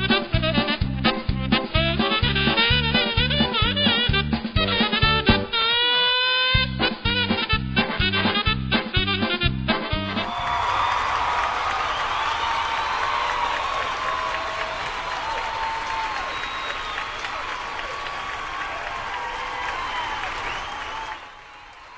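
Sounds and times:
audience applauding: 0:10.1 - 0:21.9.

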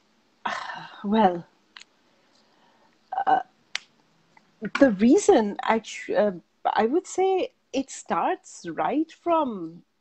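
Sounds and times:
woman saying uh over video call: 0:00.5 - 0:01.5, 0:03.1 - 0:03.5, 0:04.6 - 0:09.8.

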